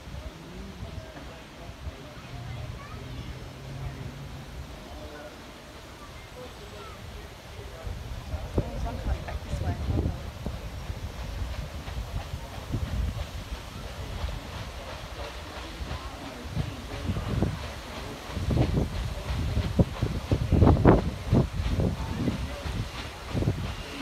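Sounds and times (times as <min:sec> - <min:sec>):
steam engine and paddle wheels: 0:00.0 - 0:24.0
wind rumbling on microphone: 0:07.8 - 0:14.9, 0:16.5 - 0:24.0.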